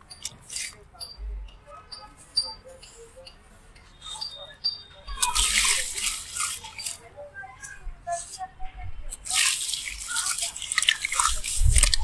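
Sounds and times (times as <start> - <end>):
crackling crunches of lump: 5.2 - 7.0, 9.1 - 12.0.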